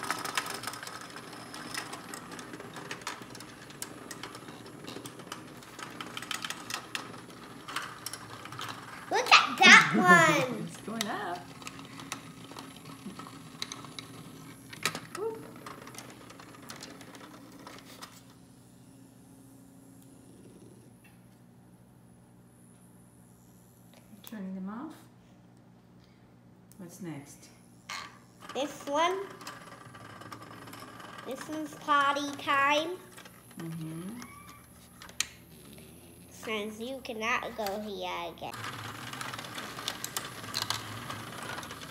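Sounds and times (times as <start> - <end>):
toy robot bugs buzzing: 27.9 - 41.9.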